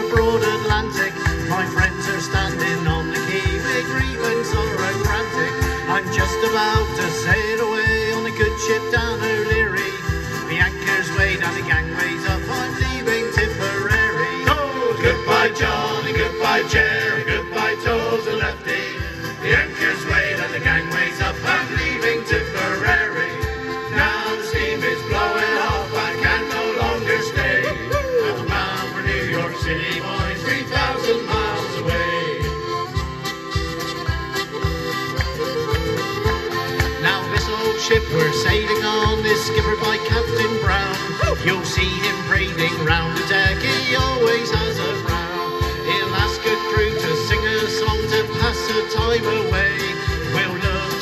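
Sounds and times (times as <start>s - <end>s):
male group singing folk song: 0.0s - 32.9s, 36.7s - 51.0s
piano accordion: 0.0s - 51.0s
strummed acoustic guitar: 0.0s - 51.0s.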